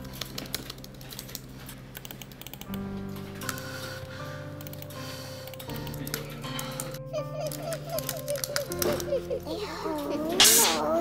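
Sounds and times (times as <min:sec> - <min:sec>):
background music of held notes: 0:00.0 - 0:11.0
fast typing on keyboard: 0:02.0 - 0:02.8, 0:04.6 - 0:09.3.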